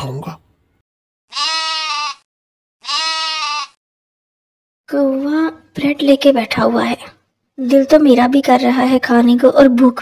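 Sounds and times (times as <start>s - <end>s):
goat bleating: 1.3s - 3.8s.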